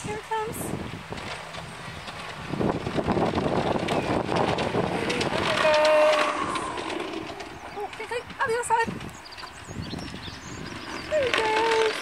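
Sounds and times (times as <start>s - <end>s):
model train rumbling on track: 0.0s - 12.0s
rail clicks: 0.0s - 12.0s.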